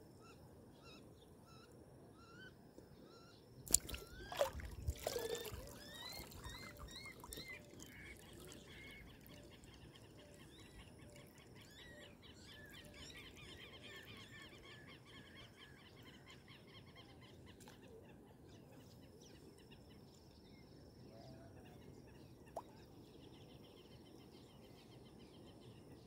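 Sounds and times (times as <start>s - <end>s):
faint birds chirping: 0.1s - 26.0s.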